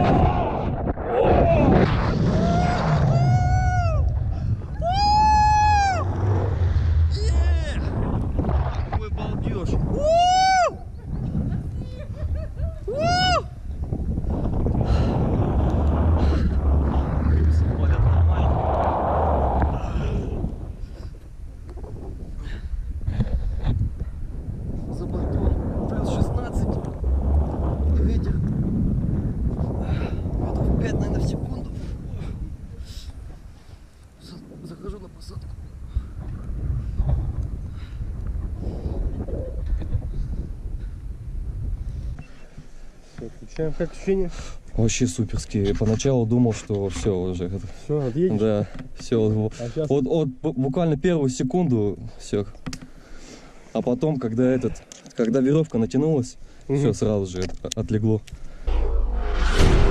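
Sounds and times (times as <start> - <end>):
wind buffeting microphone: 0.0 - 49.5, 57.9 - 59.9.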